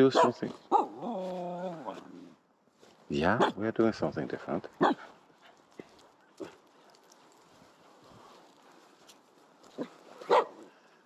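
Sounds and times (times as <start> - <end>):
dog barking: 0.0 - 1.1, 3.4 - 3.6, 4.8 - 5.1, 9.8 - 10.7.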